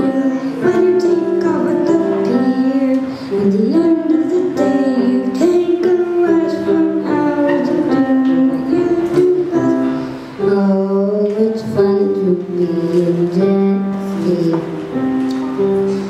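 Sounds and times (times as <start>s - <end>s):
electronic keyboard chords: 0.0s - 16.0s.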